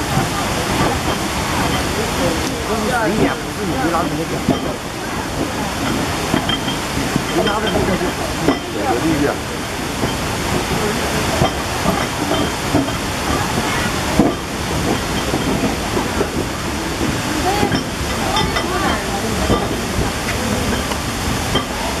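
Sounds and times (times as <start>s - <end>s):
indistinct voices: 0.0s - 22.0s
steady rushing hiss: 0.0s - 22.0s.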